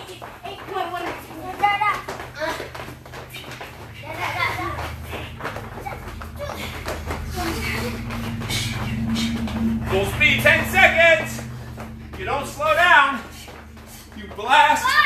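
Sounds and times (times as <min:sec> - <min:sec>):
people talking: 0:00.0 - 0:02.6, 0:09.9 - 0:11.4, 0:14.2 - 0:15.0
low steady hum: 0:00.0 - 0:15.0.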